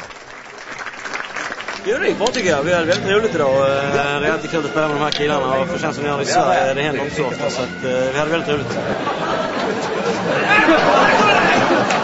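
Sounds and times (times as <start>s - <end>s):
people chattering: 1.8s - 12.0s.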